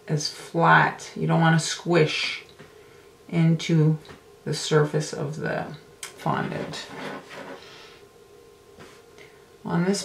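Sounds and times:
soft rub on work surface: 6.6s - 7.9s.

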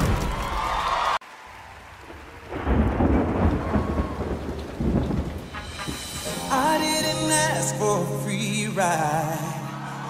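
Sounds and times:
rain hiss: 1.2s - 7.0s
thunder rumble: 1.5s - 7.7s
music: 5.4s - 10.0s.

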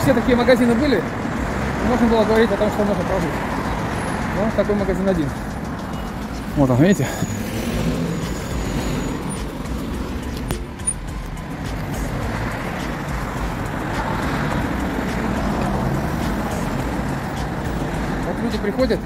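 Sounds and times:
city street traffic hum: 0.0s - 19.0s.

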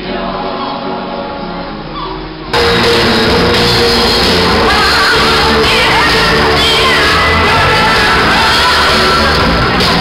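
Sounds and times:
choir singing: 0.0s - 2.0s, 3.2s - 10.0s
loud music: 0.0s - 10.0s.

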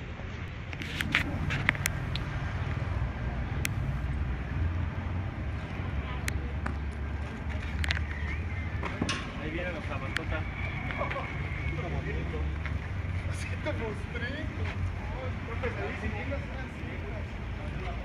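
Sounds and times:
vehicle engine rumbling: 0.0s - 18.0s.

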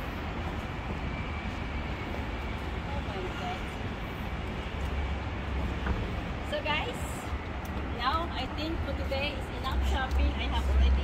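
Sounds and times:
faint voices of passersby: 0.0s - 11.0s
traffic rumble: 0.0s - 11.0s.

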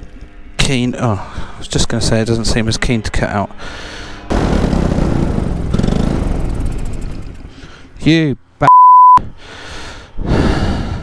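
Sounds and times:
paramotor engine and propeller: 4.3s - 7.8s.

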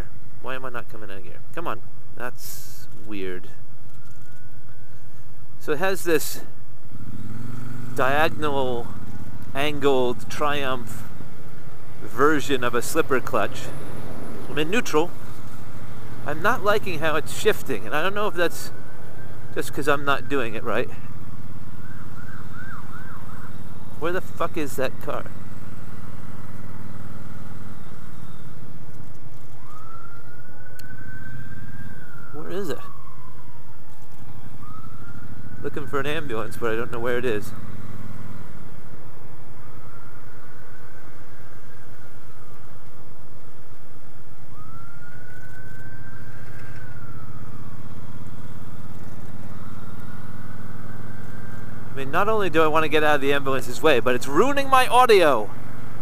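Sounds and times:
faint ambulance siren wailing: 7.3s - 56.0s.

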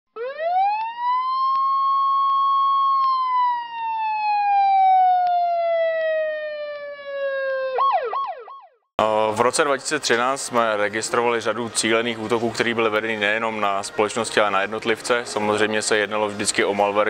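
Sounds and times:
siren wailing: 0.1s - 8.8s
siren yelps: 0.1s - 8.8s.

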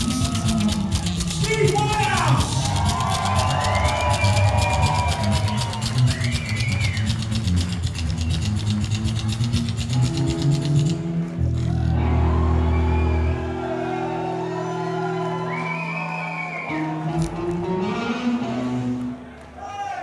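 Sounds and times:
slapped double bass clicking: 0.0s - 11.9s
rockabilly band playing live: 0.0s - 15.1s, 16.7s - 19.3s.

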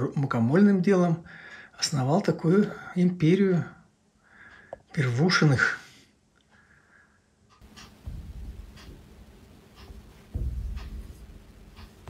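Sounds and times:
brush strokes on canvas: 7.6s - 12.0s.

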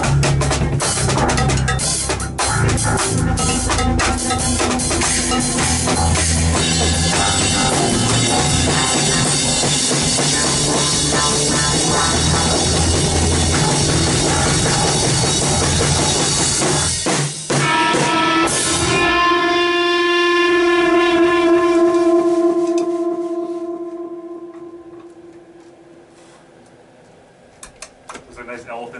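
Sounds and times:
rock band playing: 0.0s - 25.8s
held guitar note ringing: 17.5s - 26.9s.

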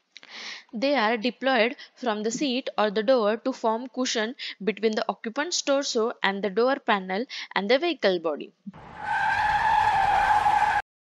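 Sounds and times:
car tyre screech: 8.8s - 10.9s.

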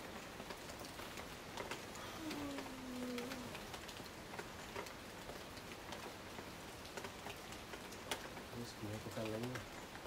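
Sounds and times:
rain pattering: 0.0s - 10.0s.

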